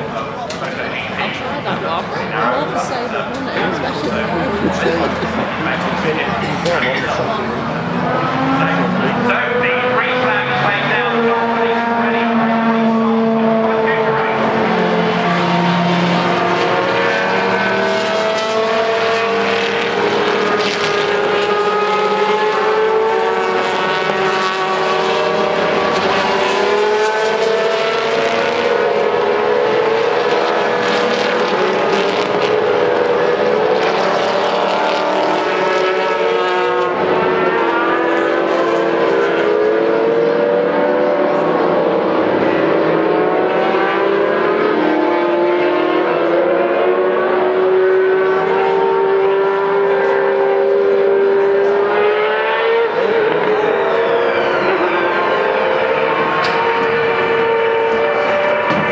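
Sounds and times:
racing car engines: 0.0 - 58.9.

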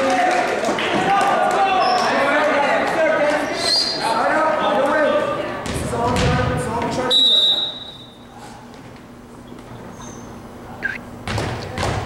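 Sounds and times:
volleyball bouncing on hardwood floor: 5.6 - 6.6, 11.2 - 12.0
high squeaks of sneakers: 9.5 - 11.0.

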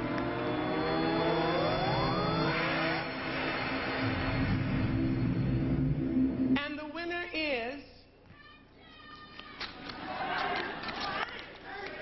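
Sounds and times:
electronic rising sweep: 0.0 - 6.6
steady electronic drone: 0.0 - 6.9.

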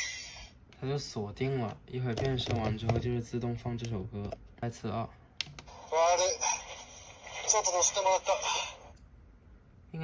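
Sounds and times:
toy speaker voice: 5.7 - 8.8.

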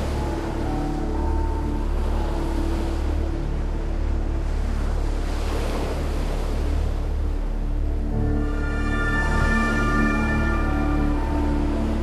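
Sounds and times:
sea waves washing: 0.0 - 12.0.

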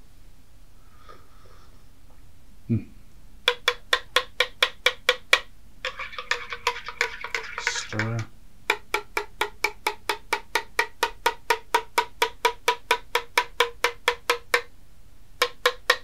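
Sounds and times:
metal spoon tapping ceramic mug: 3.5 - 14.7.

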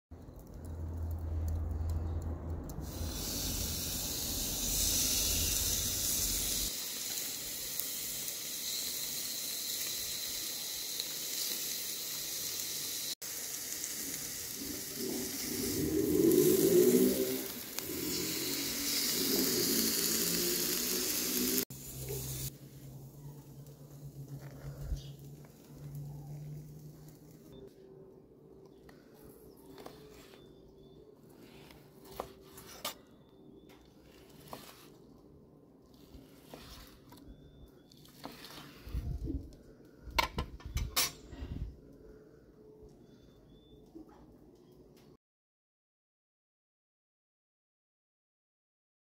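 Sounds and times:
steak sizzling on grill: 2.8 - 22.6.

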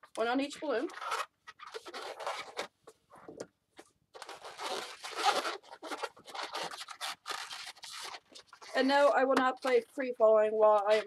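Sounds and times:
balloons squeaking and rubbing: 0.0 - 9.7, 10.7 - 11.0.

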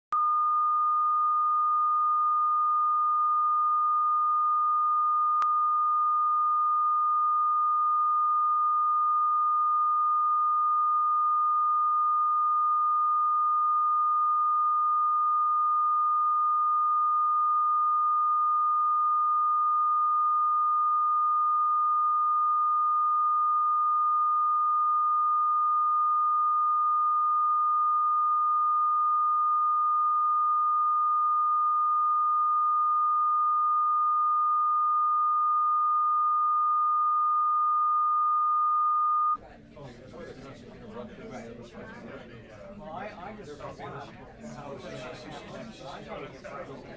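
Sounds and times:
pure test tone: 0.1 - 39.4.

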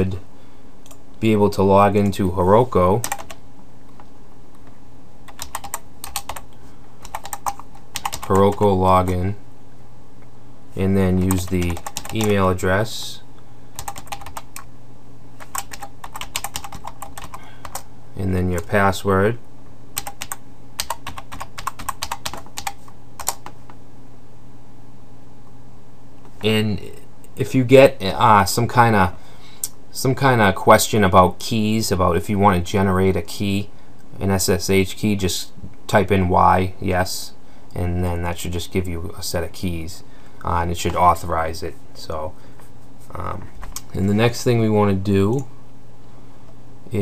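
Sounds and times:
steady low hum: 0.0 - 47.0
computer keyboard typing: 3.0 - 3.4, 5.3 - 8.6, 11.2 - 12.4, 13.8 - 14.7, 15.4 - 17.8, 20.0 - 23.6.

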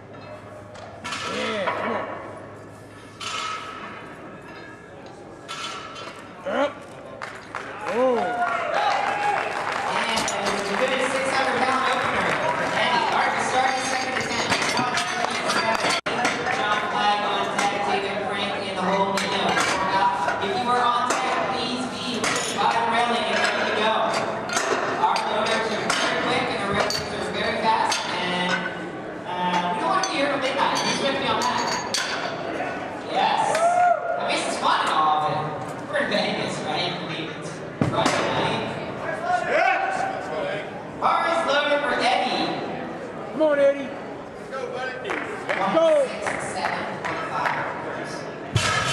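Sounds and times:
hubbub of voices in a hall: 0.0 - 48.9.

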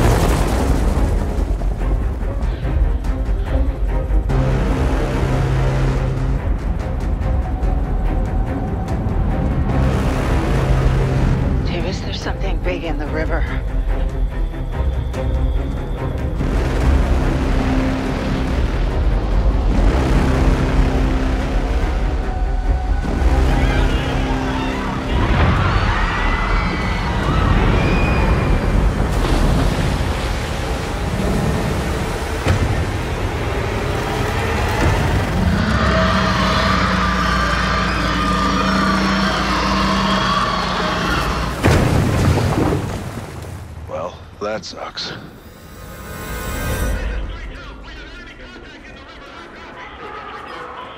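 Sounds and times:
orchestral score: 0.0 - 29.9
rushing water: 0.0 - 46.8.

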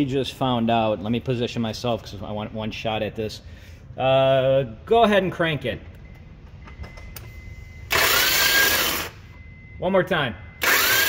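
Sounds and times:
starter motor cranking engine: 10.6 - 11.0.

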